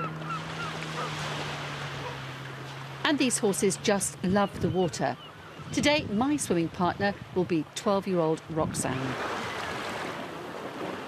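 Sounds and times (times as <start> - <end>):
sea waves: 0.0 - 11.0
wind: 0.0 - 11.0.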